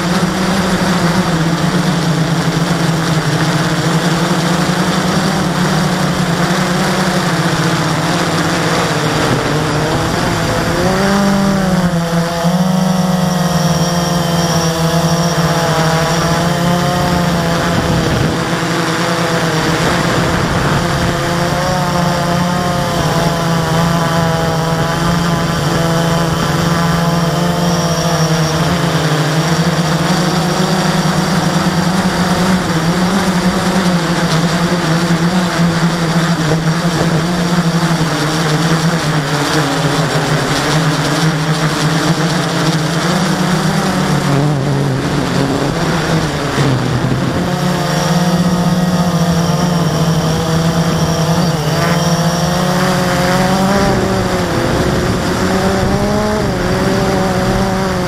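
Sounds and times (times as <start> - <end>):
drone motors buzzing whine: 0.0 - 58.0.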